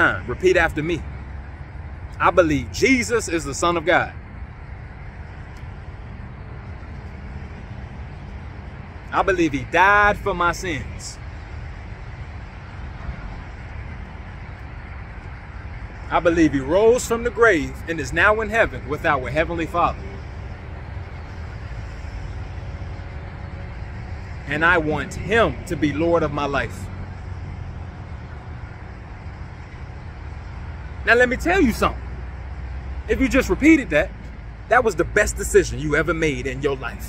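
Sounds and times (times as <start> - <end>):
distant road traffic rumble: 0.0 - 37.0.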